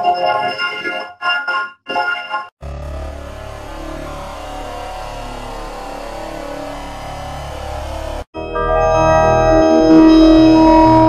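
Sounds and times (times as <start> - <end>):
distorted electronic wash: 2.6 - 8.3
low drone: 2.6 - 11.0.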